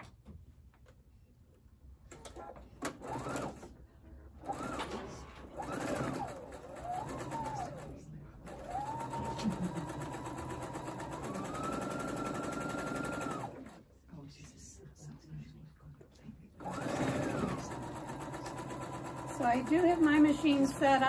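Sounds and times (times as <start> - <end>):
electric sewing machine stitching: 2.8 - 3.7, 4.4 - 13.8, 16.6 - 21.0.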